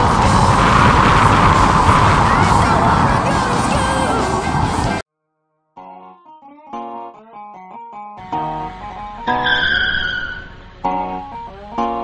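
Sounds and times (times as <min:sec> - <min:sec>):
guitar music: 0:05.8 - 0:09.6, 0:10.5 - 0:12.0
tyre screech: 0:09.3 - 0:10.7.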